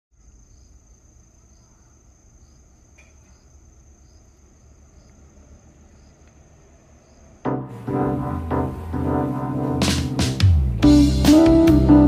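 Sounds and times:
insect droning: 0.1 - 9.3
low rumble: 6.5 - 11.0
loud music: 7.5 - 12.0.

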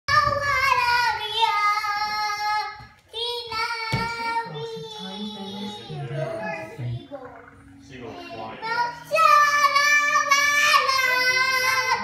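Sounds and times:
girl singing: 0.1 - 7.3, 8.0 - 12.0.

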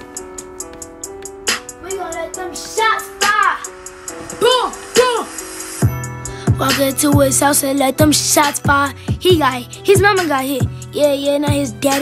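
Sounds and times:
hip hop beat: 0.0 - 12.0.

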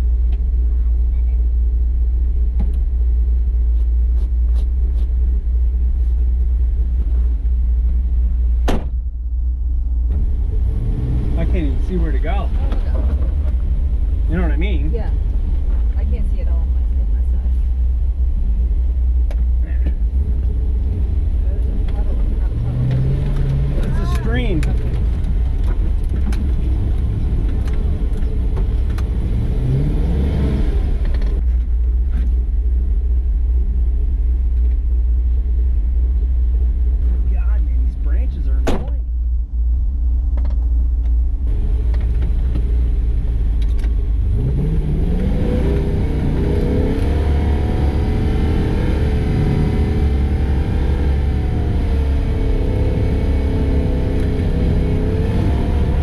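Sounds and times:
truck engine rumbling: 0.0 - 56.0.

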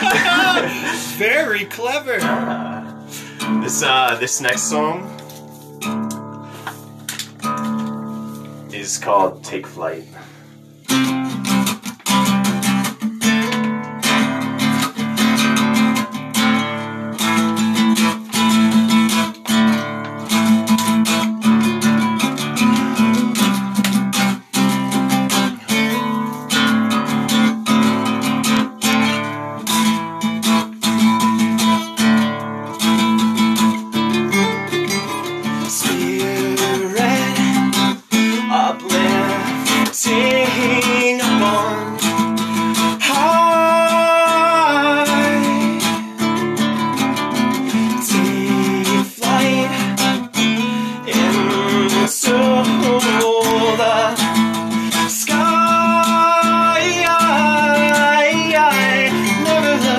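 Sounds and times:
guitar strumming chords: 0.0 - 59.9.

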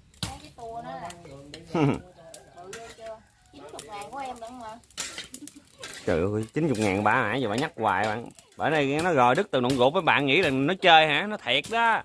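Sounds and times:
voices talking quietly: 0.3 - 12.0
metal spatula clinking on wok: 4.3 - 10.6.

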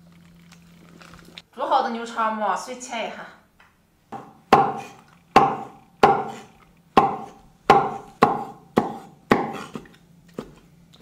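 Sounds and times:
cleaver chopping on wooden board: 4.2 - 9.9.

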